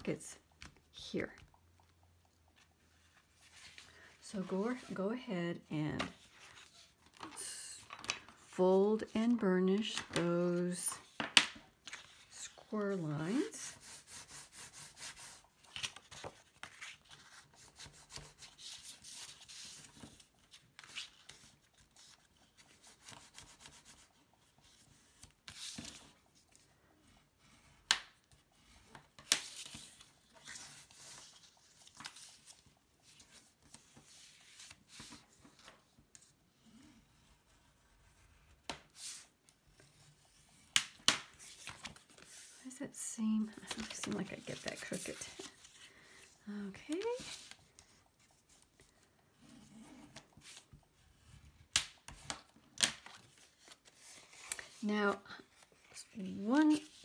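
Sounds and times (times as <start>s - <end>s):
paper rubbing and rustling: 13.6s - 26.2s, 28.7s - 36.3s, 43.6s - 50.8s.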